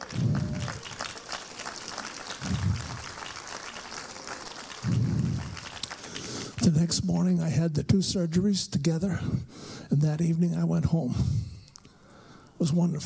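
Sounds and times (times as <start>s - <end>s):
congregation applauding: 0.0s - 6.6s.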